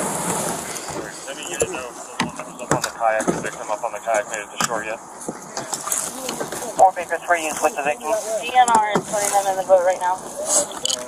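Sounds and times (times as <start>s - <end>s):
indistinct voices talking: 0.7s - 11.0s.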